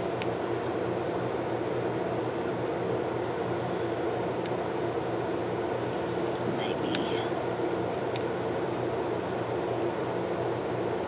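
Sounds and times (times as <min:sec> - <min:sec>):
fan whirring: 0:00.0 - 0:11.0.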